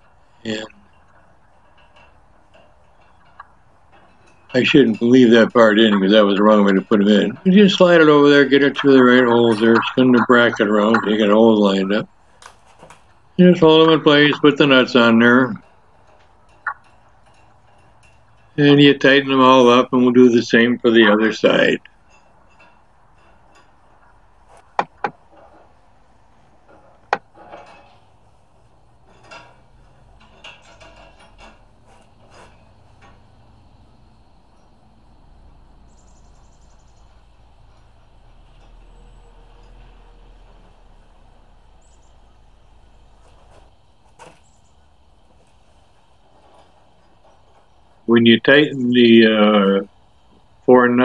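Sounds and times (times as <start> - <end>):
metal clicks of nuts and tools: 0.0 - 5.1, 21.8 - 34.7.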